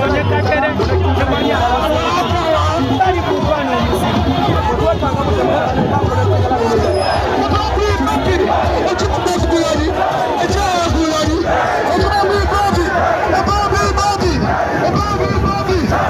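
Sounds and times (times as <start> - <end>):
large crowd calling out: 0.0 - 16.0.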